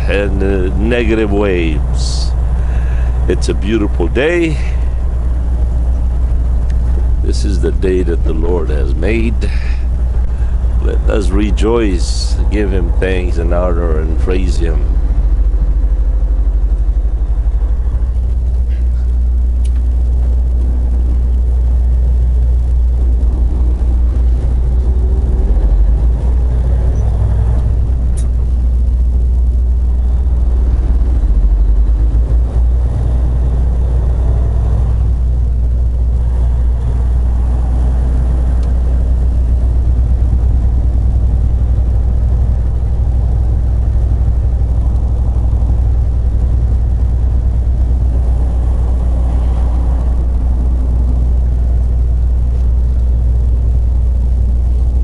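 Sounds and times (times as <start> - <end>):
diesel engine rumble: 0.0 - 55.0
road noise: 0.0 - 55.0.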